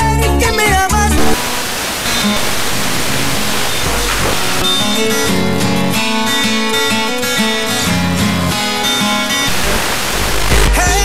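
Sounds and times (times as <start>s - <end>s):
music on fm radio: 0.0s - 11.0s
fm radio static hiss: 1.0s - 11.0s.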